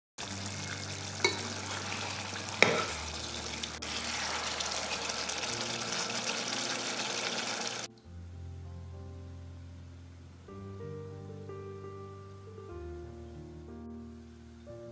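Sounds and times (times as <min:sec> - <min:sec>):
gravy simmering and sizzling: 0:00.2 - 0:07.9
metal spoon stirring: 0:00.8 - 0:07.5.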